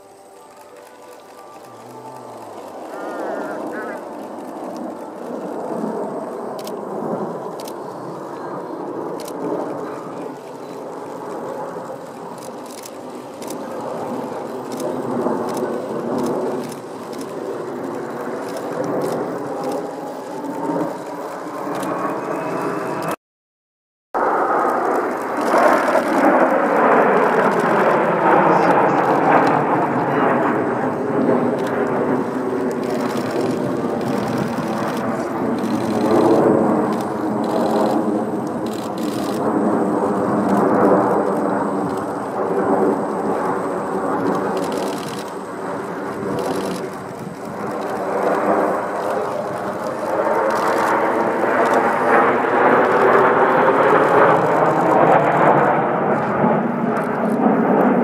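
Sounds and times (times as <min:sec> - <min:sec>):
jet aircraft flying overhead: 0:00.0 - 0:23.2, 0:24.2 - 0:58.0.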